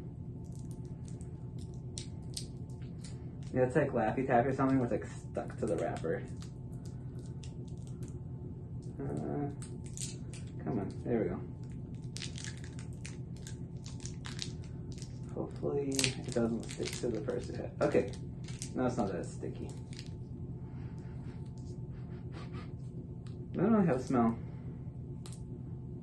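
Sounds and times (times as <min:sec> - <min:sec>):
steady low hum: 0:00.0 - 0:26.0
candy wrapper crinkling: 0:00.4 - 0:03.6, 0:05.5 - 0:08.2, 0:08.8 - 0:11.0, 0:11.6 - 0:20.2.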